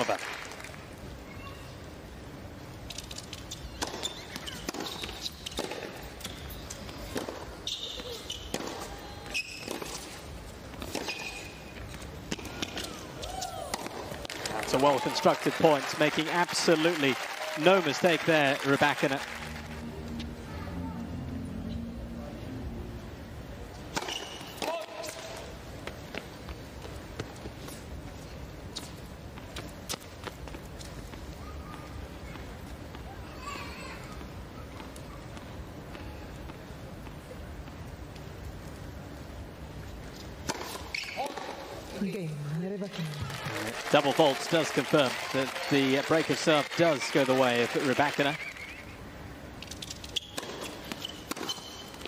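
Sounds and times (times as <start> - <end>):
shoe squeaks: 3.3 - 7.0, 7.6 - 10.2, 11.0 - 11.9, 24.0 - 24.6, 28.7 - 29.0, 40.8 - 41.6, 48.3 - 49.0, 49.6 - 52.0
tennis ball bouncing on hard court: 7.0 - 10.1, 10.8 - 11.5
racket striking tennis ball: 8.4 - 10.1, 10.8 - 11.6, 23.9 - 25.3, 40.4 - 41.5, 50.3 - 52.0
crowd murmur: 16.9 - 24.0.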